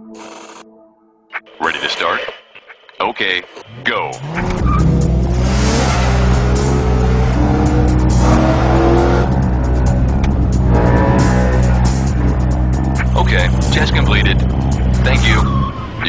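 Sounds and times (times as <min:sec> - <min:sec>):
car engine revving and accelerating: 0:03.6 - 0:16.0.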